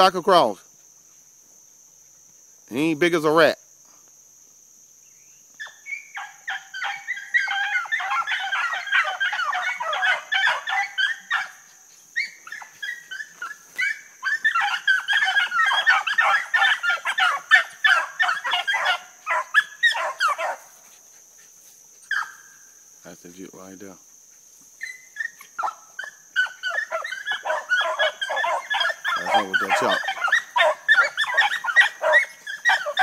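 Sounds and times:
crickets trilling: 0:00.0 - 0:33.0
dogs baying and barking: 0:05.6 - 0:22.7, 0:24.2 - 0:33.0.

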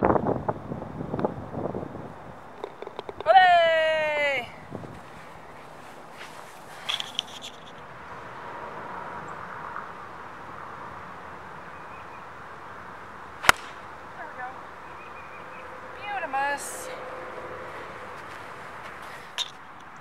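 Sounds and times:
faint outdoor background: 0:00.0 - 0:20.0
golf club striking ball: 0:13.4 - 0:14.0.

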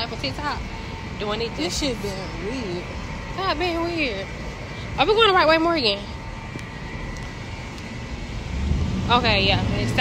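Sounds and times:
city street rumble: 0:00.0 - 0:10.0.

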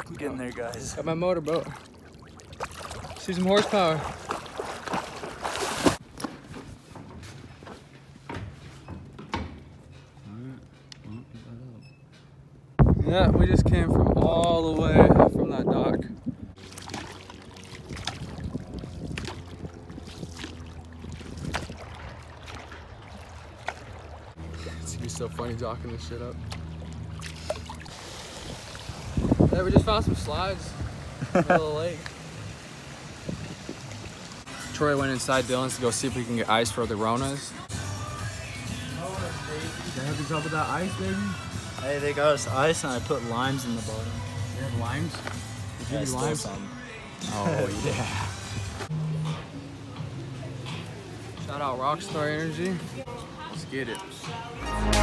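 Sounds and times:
water splashing from kicking: 0:00.0 - 0:06.0, 0:16.6 - 0:24.4.

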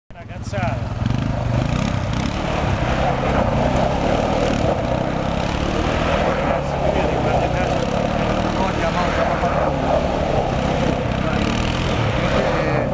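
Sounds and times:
quad bike engine revving: 0:00.2 - 0:12.9.

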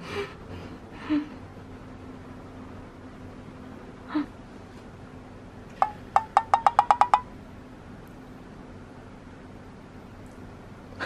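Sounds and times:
sharp pitched taps: 0:05.8 - 0:07.3.

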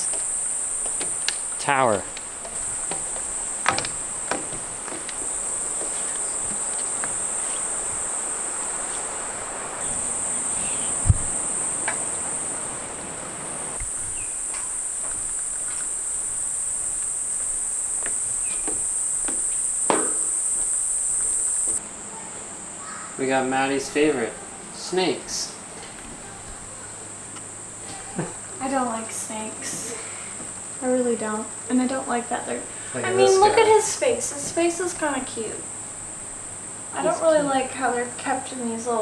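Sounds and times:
footsteps on wooden boards: 0:00.0 - 0:07.8, 0:16.8 - 0:21.8
insects droning: 0:00.0 - 0:39.0
sharp thump: 0:19.9 - 0:20.3.

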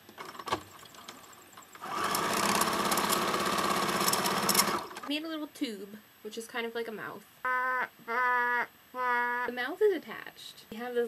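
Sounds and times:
handling clicks and knocks: 0:00.0 - 0:01.8
sewing machine motor stitching: 0:01.7 - 0:05.1.

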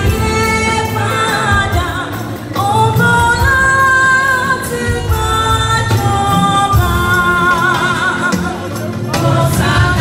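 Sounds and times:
church choir singing: 0:09.1 - 0:10.0.

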